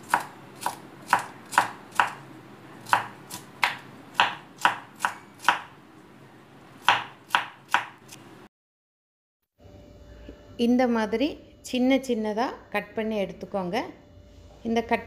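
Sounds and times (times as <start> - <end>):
knife chopping on wooden board: 0.0 - 2.2, 2.8 - 5.7, 6.8 - 8.2.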